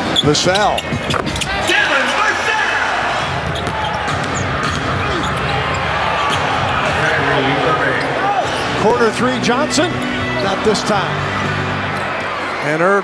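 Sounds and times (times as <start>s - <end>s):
crowd noise in large hall: 0.0s - 13.0s
basketball bouncing on court: 3.3s - 6.7s.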